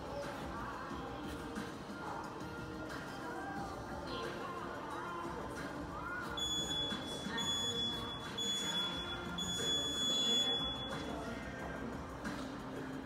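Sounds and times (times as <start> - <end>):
electronic beeper beeping: 6.4 - 11.2.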